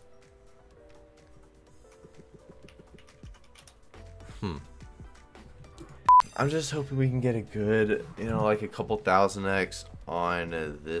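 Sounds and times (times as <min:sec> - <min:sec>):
faint game music: 0:00.0 - 0:11.0.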